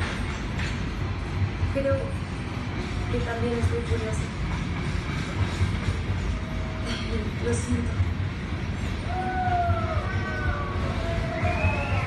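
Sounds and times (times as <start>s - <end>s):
freight train wheels rumbling: 0.0s - 12.0s.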